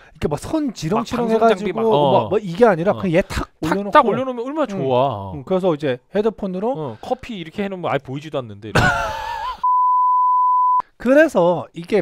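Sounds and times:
man laughing: 8.7s - 9.6s
censor bleep: 9.6s - 10.8s.

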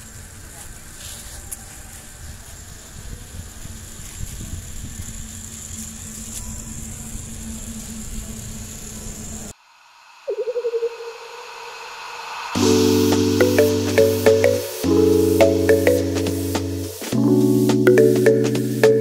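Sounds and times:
outdoor background noise: 0.0s - 17.2s
warbling tone: 10.3s - 11.8s.

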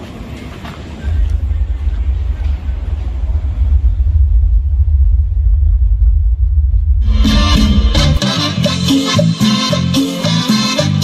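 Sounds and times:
subwoofers playing deep bass: 0.9s - 11.0s.

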